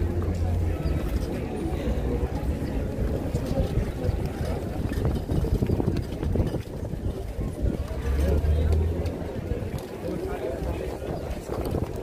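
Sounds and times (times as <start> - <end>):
crowd murmur: 0.0 - 12.0
wind buffeting microphone: 0.0 - 12.0.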